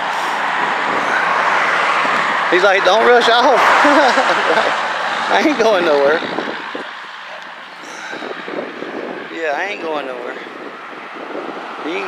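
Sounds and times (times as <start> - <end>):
rushing vehicle noise: 0.0 - 12.0.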